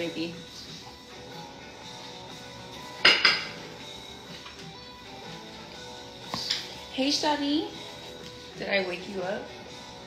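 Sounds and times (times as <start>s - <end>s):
soft background music: 0.0s - 10.0s
kitchenware clanking: 2.9s - 3.8s.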